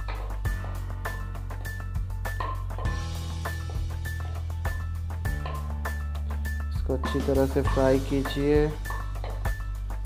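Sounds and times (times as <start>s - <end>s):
held bass notes: 0.0s - 10.0s
percussive beat: 0.0s - 10.0s.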